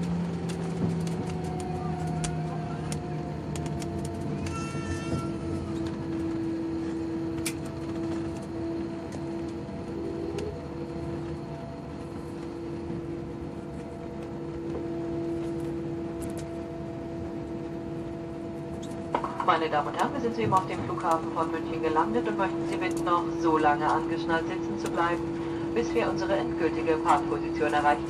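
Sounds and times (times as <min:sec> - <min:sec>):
cabin air noise: 0:00.0 - 0:28.0
jet engines idling: 0:00.0 - 0:28.0
low hum: 0:00.0 - 0:28.0.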